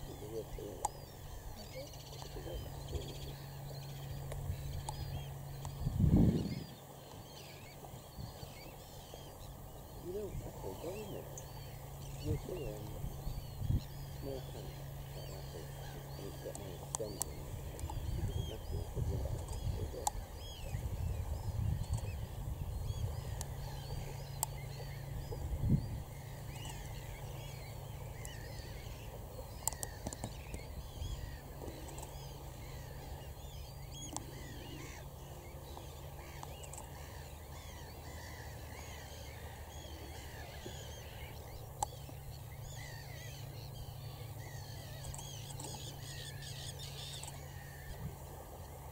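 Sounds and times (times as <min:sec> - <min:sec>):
waders chirping calls: 0:00.0 - 0:48.9.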